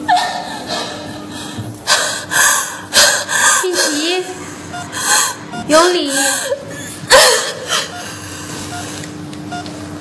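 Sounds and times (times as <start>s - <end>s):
woman panting and gasping: 0.1s - 8.6s.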